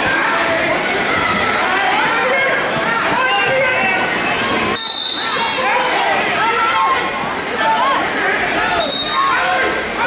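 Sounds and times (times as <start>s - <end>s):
people shouting in a gym hall: 0.0s - 10.0s.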